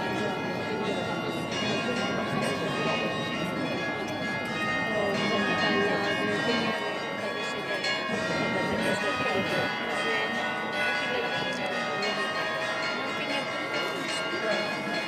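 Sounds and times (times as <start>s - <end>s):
church bells ringing: 0.0s - 15.0s
crowd murmuring: 0.0s - 15.0s.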